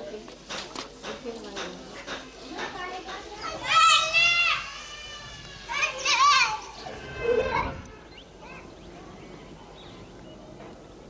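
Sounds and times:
faint children chatter: 0.0 - 11.0
children shouting: 3.3 - 9.3.

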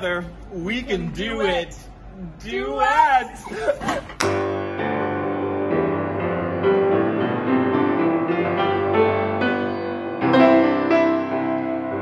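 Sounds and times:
piano chords: 4.2 - 12.0.

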